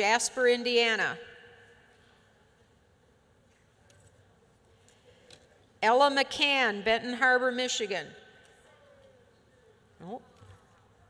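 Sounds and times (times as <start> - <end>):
large hall room tone: 0.0 - 11.0.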